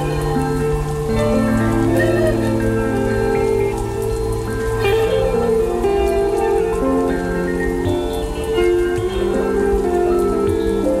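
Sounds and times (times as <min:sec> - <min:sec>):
instrumental music with held notes: 0:00.0 - 0:11.0
steady rain: 0:00.0 - 0:11.0.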